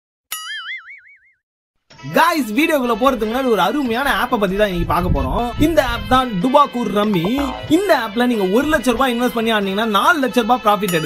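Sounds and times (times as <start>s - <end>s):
cartoon boing: 0.4s - 1.4s, 7.1s - 7.7s.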